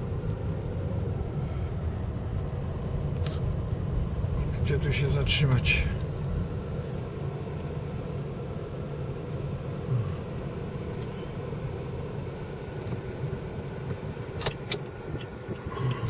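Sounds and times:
car engine and tyres rumble: 0:00.0 - 0:16.0.

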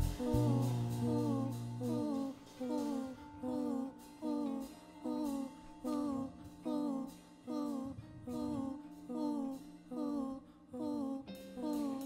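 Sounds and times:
held low bass note: 0:00.0 - 0:02.4
live band music: 0:00.0 - 0:03.0.

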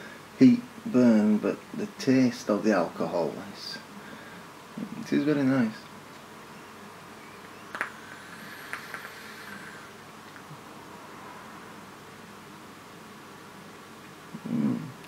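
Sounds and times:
quiet exhale: 0:04.0 - 0:04.5, 0:08.0 - 0:10.0
soft hiss of air through atomizer: 0:07.5 - 0:11.8
person humming: 0:14.3 - 0:15.0.

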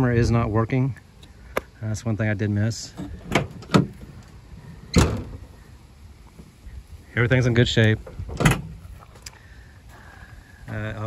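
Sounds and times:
tailgate clunking open: 0:03.0 - 0:05.4, 0:08.1 - 0:08.8
latch clicks: 0:08.3 - 0:08.7.

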